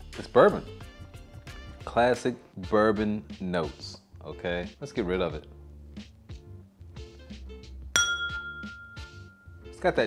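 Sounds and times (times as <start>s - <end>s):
glass clinking and ringing: 8.0s - 9.7s.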